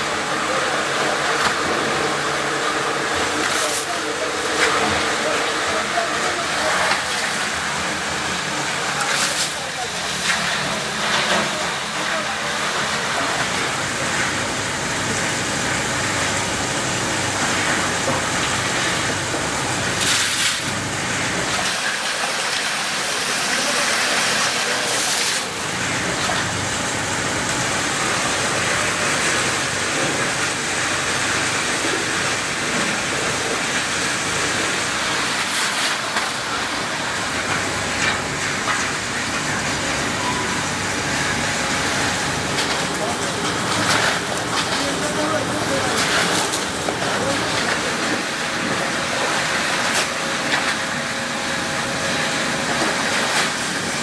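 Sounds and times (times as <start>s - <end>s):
machinery rumbling: 25.5s - 54.0s.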